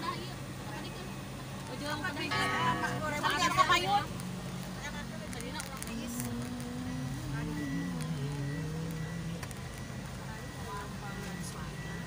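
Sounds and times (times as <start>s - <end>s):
steady rumble of noise: 0.0s - 12.0s.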